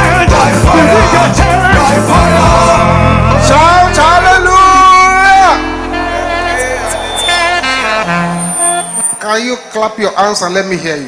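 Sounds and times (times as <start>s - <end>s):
church worship music: 0.0s - 9.9s
man speaking over microphone: 3.4s - 7.2s, 9.2s - 11.0s.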